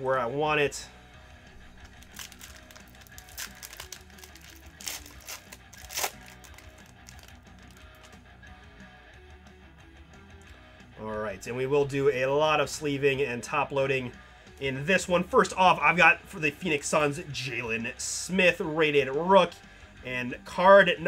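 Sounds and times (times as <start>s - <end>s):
quiet background music: 0.0s - 21.0s
foil wrapper crinkling and tearing: 1.6s - 8.2s.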